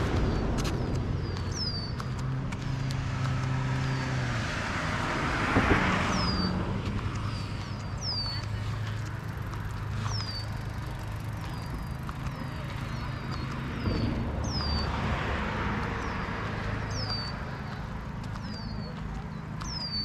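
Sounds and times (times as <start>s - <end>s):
low rumble: 0.0s - 10.7s.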